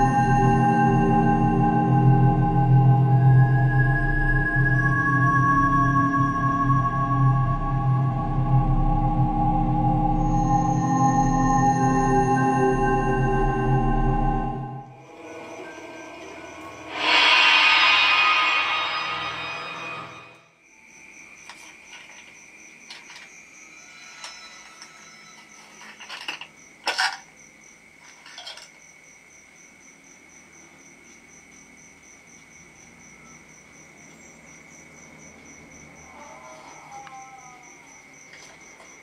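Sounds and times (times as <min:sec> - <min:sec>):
high trill with pulsing chirp: 0:00.0 - 0:20.4
horror music swell: 0:00.0 - 0:20.6.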